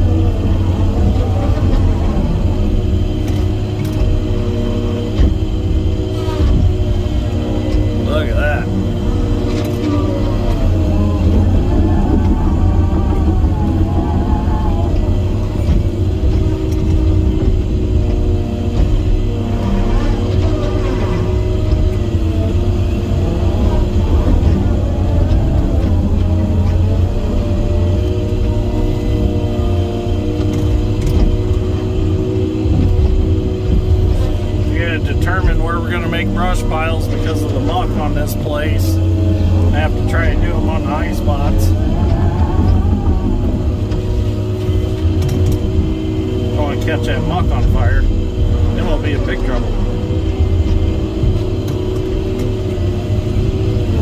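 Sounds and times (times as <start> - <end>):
heavy machine engine rumble: 0.0 - 54.0.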